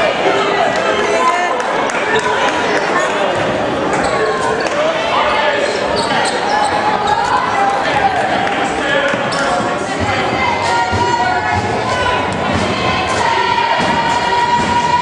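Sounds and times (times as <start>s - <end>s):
many voices shouting and talking: 0.0s - 15.0s.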